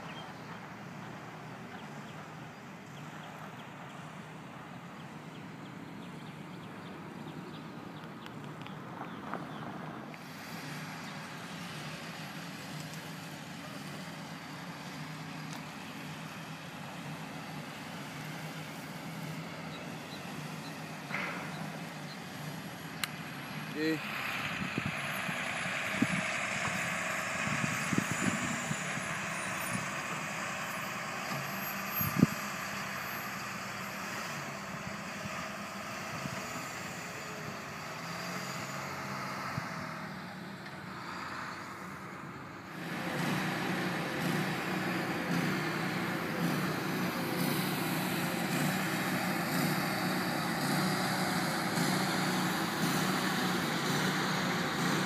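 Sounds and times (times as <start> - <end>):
diesel construction machinery running: 0.0 - 55.0.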